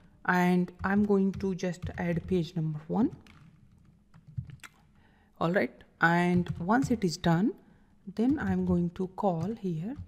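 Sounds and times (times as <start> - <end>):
person speaking: 0.3 - 3.3, 5.4 - 10.0.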